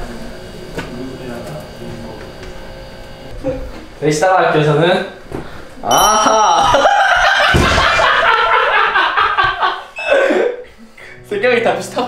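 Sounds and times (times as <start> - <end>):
young man laughing loudly: 6.3 - 10.6.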